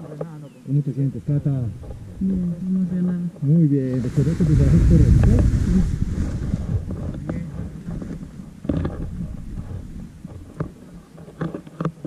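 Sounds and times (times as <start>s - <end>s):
wind rumbling on microphone: 1.1s - 12.0s
harness gear clicks and rustles: 7.0s - 12.0s.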